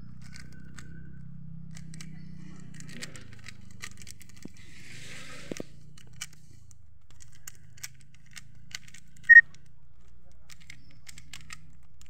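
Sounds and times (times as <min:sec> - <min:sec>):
plastic cube layers clicking: 0:00.0 - 0:12.0.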